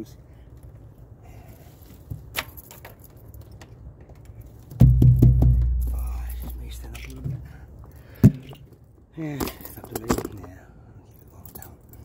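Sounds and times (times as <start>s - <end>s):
deep drum boom: 4.8s - 6.1s.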